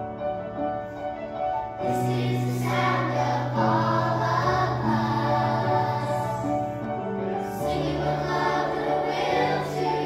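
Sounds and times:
piano accompaniment: 0:00.0 - 0:10.0
children's choir singing: 0:01.8 - 0:10.0.

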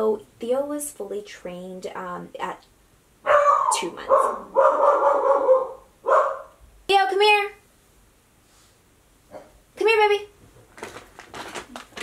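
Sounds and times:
puppy barking: 0:03.2 - 0:06.6.

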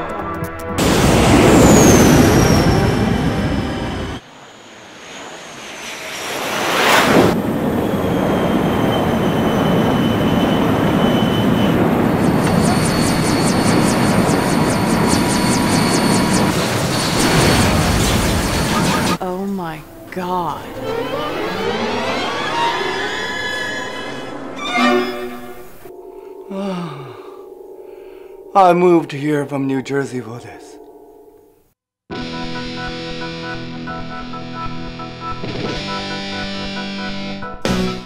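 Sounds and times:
jet aircraft rushing whoosh: 0:00.8 - 0:19.2, 0:20.6 - 0:25.9.

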